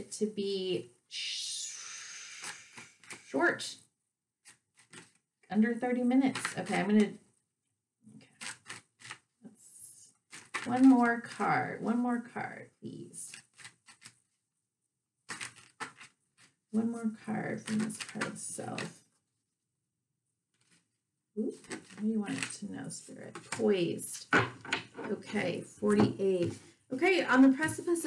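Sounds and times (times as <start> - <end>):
cards being shuffled: 4.5 - 5.2, 8.3 - 9.2, 10.3 - 10.9, 13.3 - 14.2, 15.3 - 16.5, 17.6 - 18.9, 21.6 - 22.6, 23.3 - 23.6.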